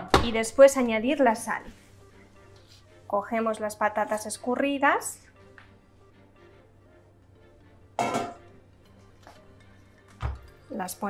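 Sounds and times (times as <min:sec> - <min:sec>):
faint background music: 0:00.0 - 0:11.0
kitchenware clattering against glass bowl: 0:08.0 - 0:08.4.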